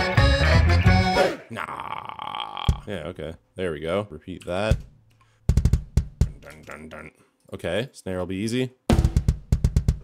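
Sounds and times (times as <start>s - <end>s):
sampled drum hits: 4.7s - 6.4s, 8.9s - 10.0s.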